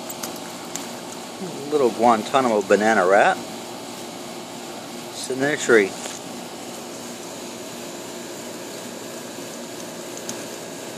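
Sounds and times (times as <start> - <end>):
machine hum and hiss: 0.0 - 10.9.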